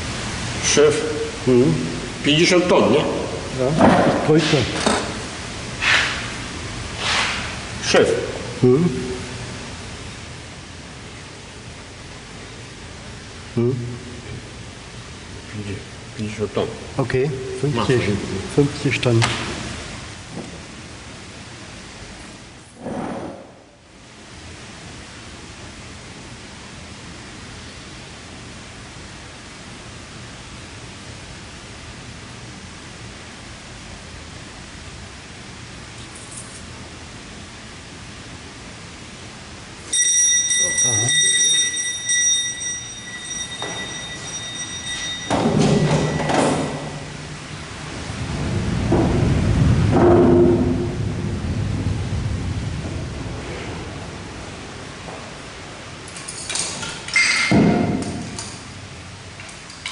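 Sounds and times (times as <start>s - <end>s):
high ringing tone: 39.8s - 47.6s.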